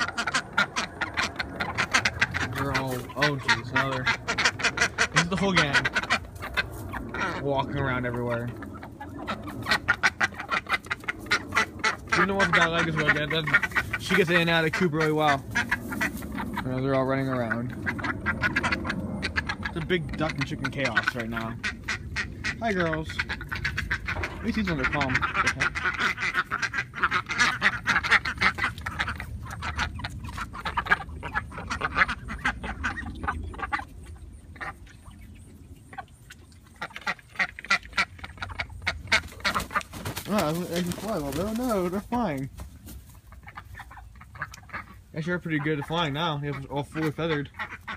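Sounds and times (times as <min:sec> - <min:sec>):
chickens clucking: 0:00.0 - 0:47.9
ducks quacking: 0:00.0 - 0:47.9.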